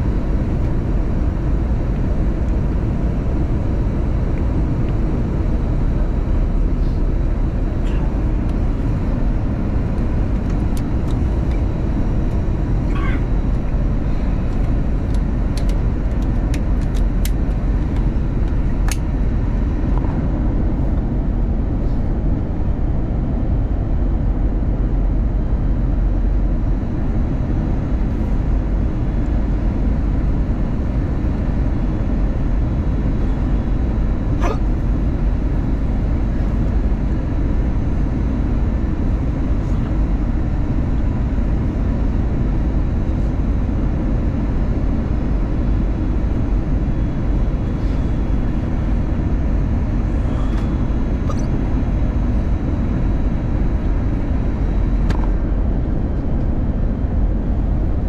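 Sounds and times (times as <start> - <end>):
airplane cabin roar: 0.0 - 58.0.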